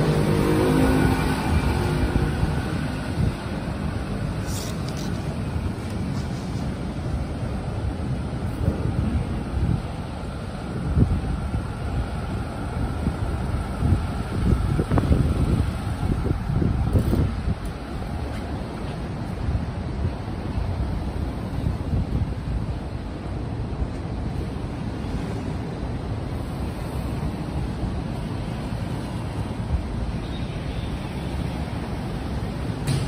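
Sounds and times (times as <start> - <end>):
cars passing on a wet road: 0.0 - 33.0
wind rumbling on microphone: 0.0 - 33.0.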